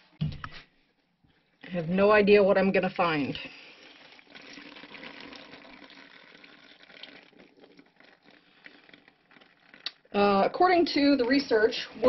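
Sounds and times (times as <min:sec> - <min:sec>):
water dripping and trickling: 0:03.0 - 0:12.0.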